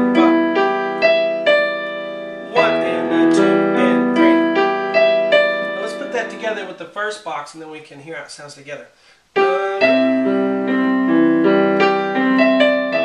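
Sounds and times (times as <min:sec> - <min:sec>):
slow piano chords and melody: 0:00.0 - 0:06.9, 0:09.4 - 0:13.0.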